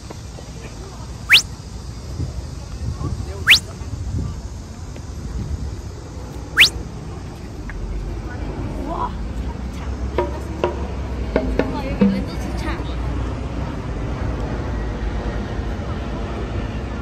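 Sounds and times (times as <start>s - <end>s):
upward-sweeping whistle effects: 1.3s - 1.5s, 6.6s - 6.8s.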